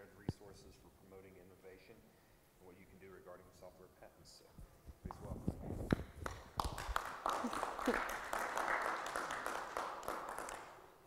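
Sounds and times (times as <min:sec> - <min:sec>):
audience applauding: 0:06.2 - 0:10.9.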